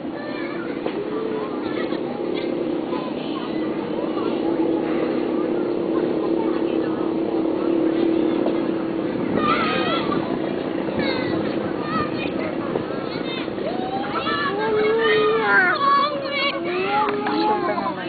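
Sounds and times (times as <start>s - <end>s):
group of people talking: 0.0s - 18.0s
rising and falling voices: 0.0s - 18.0s
steady low hum: 0.0s - 18.0s.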